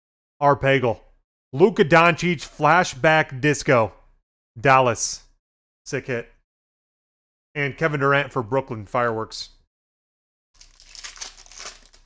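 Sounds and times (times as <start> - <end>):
foil wrapper crinkling: 10.6 - 12.0.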